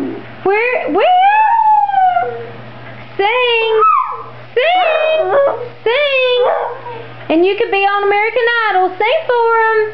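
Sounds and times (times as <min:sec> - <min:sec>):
dog howling: 0:01.0 - 0:02.6, 0:03.5 - 0:07.1.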